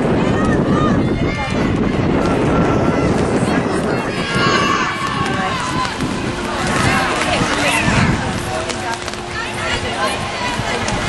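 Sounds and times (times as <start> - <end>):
voices shouting: 0.0 - 11.0.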